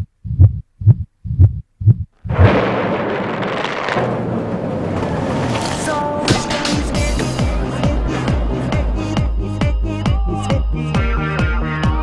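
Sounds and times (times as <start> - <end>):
deep thumps in pop song: 6.2 - 12.0.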